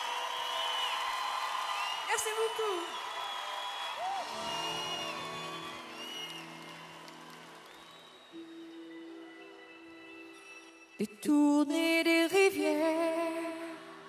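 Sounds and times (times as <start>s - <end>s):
audience cheering and whistling: 0.0s - 10.3s.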